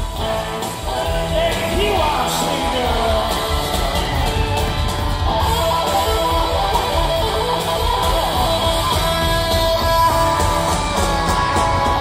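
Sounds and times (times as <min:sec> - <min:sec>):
rock band playing loud: 0:00.0 - 0:12.0
strummed electric guitar chords: 0:00.0 - 0:12.0.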